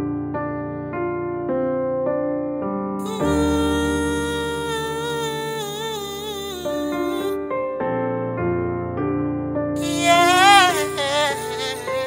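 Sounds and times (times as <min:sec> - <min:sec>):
person humming a long note: 0:03.0 - 0:07.4, 0:09.8 - 0:12.0.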